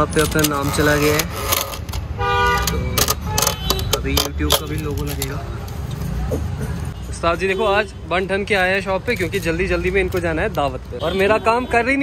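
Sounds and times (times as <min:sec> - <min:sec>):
street traffic rumble: 0:00.0 - 0:12.0
vehicle horn toot: 0:02.2 - 0:04.0.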